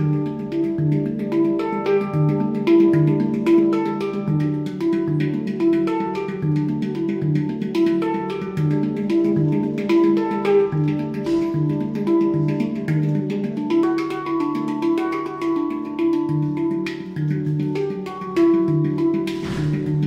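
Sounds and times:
handpan ringing notes: 0.0s - 20.0s
light percussive taps: 0.0s - 20.0s.

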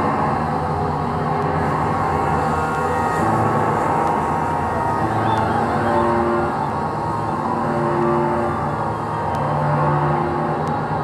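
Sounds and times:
electric bass drone through effects: 0.0s - 11.0s.

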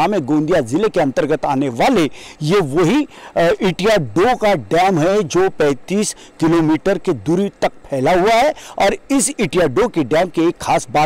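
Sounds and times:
man talking into microphone: 0.0s - 11.0s.

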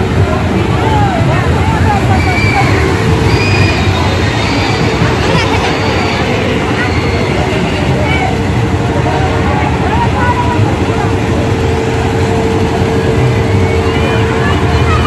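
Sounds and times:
many voices: 0.0s - 15.0s
mechanical rumble with hum: 0.0s - 15.0s.

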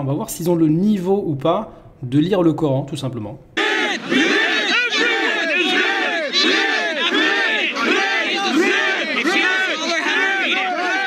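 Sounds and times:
crowd of men shouting: 3.6s - 11.0s.

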